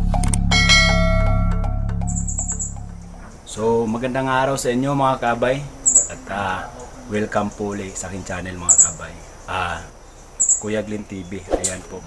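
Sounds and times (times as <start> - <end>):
intro music with steady beat: 0.0 - 3.5
bright bell chime: 0.3 - 3.0.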